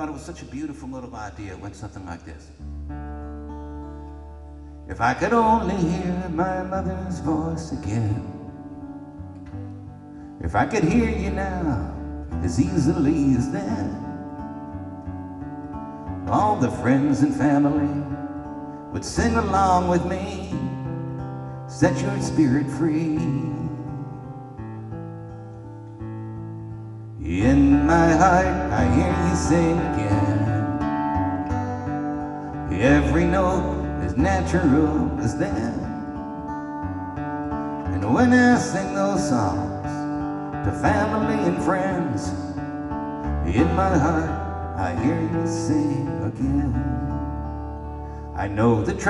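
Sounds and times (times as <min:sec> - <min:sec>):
acoustic guitar chord ringing: 0:02.6 - 0:49.0
man singing: 0:04.9 - 0:08.7, 0:10.4 - 0:14.4, 0:16.2 - 0:24.6, 0:27.2 - 0:31.6, 0:32.2 - 0:36.6, 0:37.7 - 0:42.7, 0:43.3 - 0:47.5, 0:48.3 - 0:49.0.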